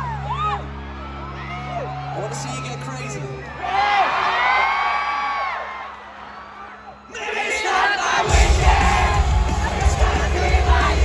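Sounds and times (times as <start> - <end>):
crowd shouting and cheering: 0.0 - 11.0
rock band playing: 8.2 - 11.0.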